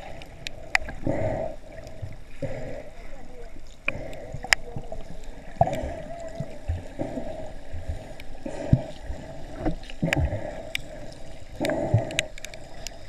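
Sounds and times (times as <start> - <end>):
muffled underwater water noise: 0.0 - 13.0.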